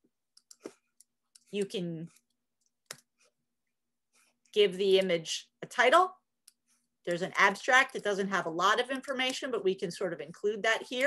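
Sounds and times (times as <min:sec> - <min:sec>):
computer mouse click: 0:00.3 - 0:03.1.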